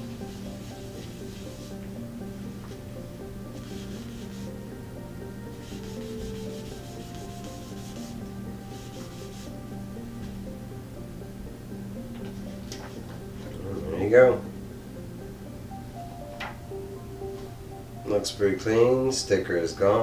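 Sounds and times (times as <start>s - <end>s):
hand rubbing glossy paper: 0.0s - 1.8s, 3.6s - 4.6s, 5.5s - 9.6s
quiet background music: 0.0s - 20.0s.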